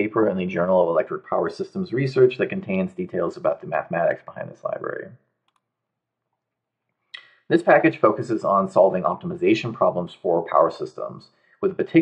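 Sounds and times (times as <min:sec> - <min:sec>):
man's voice: 0:00.0 - 0:05.2, 0:07.5 - 0:12.0.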